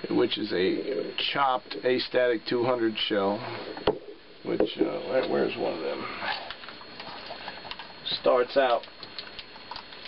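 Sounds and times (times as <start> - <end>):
steady hiss: 0.0 - 9.3
thin high whine: 0.0 - 10.0.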